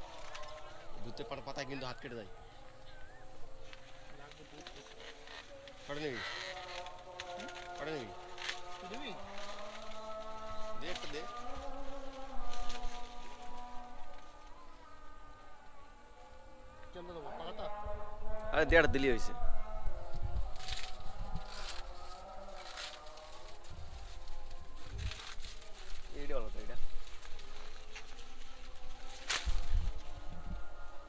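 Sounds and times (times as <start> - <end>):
stalks and leaves rustling: 0.0 - 16.0, 20.0 - 31.0
wind rumble on microphone: 17.8 - 22.1, 23.5 - 31.0.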